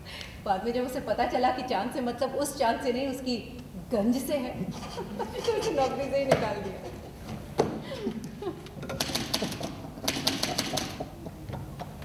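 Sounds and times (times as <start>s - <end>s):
typewriter keys clicking: 8.9s - 11.1s.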